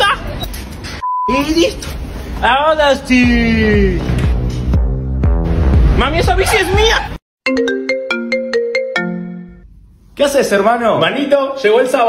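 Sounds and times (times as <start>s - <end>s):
mobile phone ringtone: 7.5s - 9.6s.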